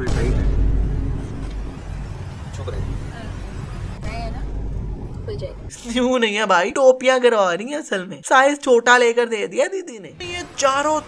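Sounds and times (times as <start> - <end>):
car interior rumble: 0.0 - 5.9.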